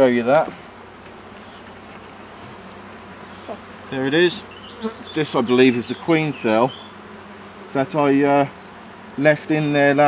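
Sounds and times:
honeybee colony buzzing: 0.0 - 10.0.

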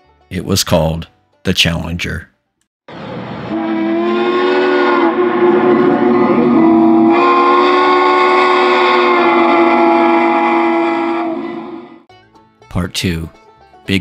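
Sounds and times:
steam locomotive whistle: 3.2 - 12.1.

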